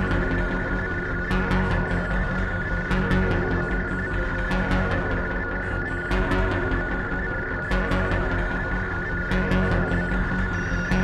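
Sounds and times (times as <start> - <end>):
high electronic drone: 0.0 - 11.0.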